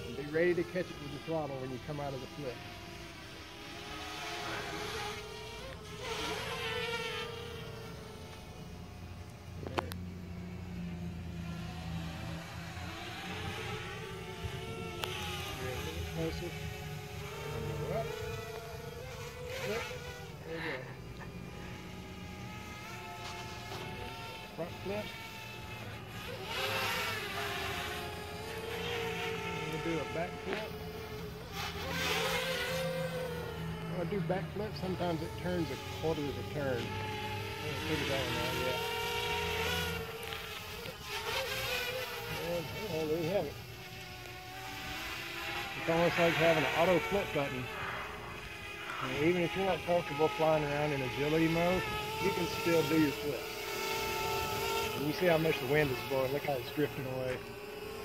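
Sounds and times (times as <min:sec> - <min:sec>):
quadcopter motors buzzing: 0:00.0 - 0:58.0.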